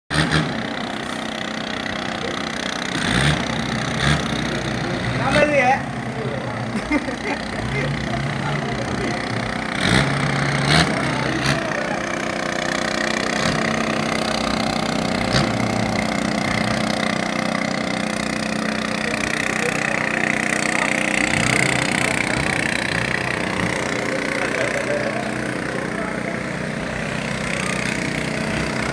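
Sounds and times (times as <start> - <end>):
boat engine droning: 0.1 - 28.9.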